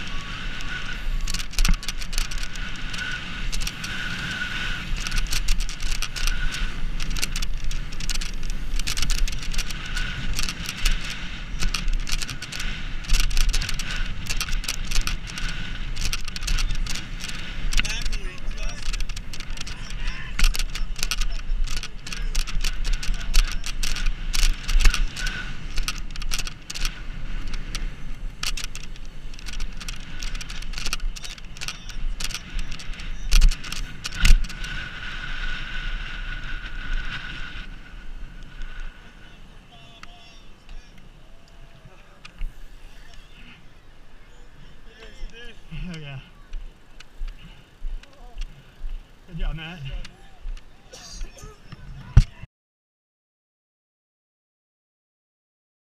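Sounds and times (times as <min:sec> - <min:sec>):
tyres rolling on asphalt: 0:00.0 - 0:52.4
bike clicks and rattles: 0:00.0 - 0:52.5
wind buffeting microphone: 0:00.0 - 0:52.5.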